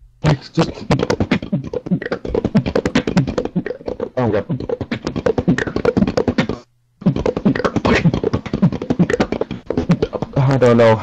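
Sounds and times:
beatboxing mouth percussion: 0.3s - 11.0s.

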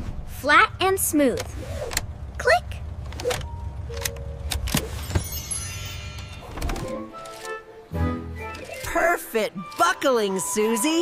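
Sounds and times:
low steady hum: 0.0s - 9.6s.

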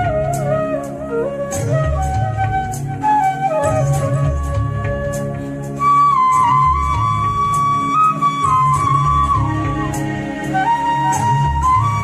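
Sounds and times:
backing track with bass and percussion: 0.0s - 12.0s
bamboo flute melody: 0.0s - 12.0s.

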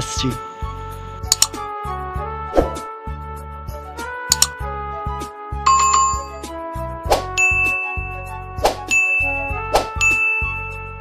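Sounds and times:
background music: 0.0s - 11.0s
bright ding sound effects: 5.7s - 6.5s, 7.4s - 8.3s, 8.9s - 10.8s.

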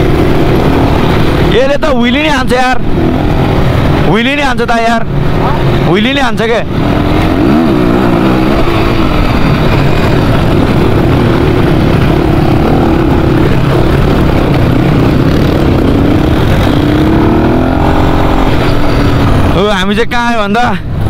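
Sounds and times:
rush of riding: 0.0s - 21.0s
dirt bike engine running: 6.6s - 19.9s.

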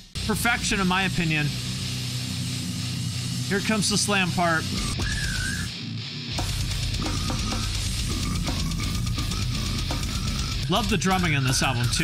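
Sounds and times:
death metal with distorted guitars: 0.0s - 12.0s.

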